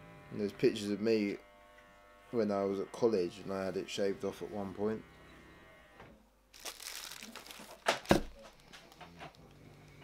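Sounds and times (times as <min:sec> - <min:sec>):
bubble wrap crinkling: 0:06.5 - 0:10.0.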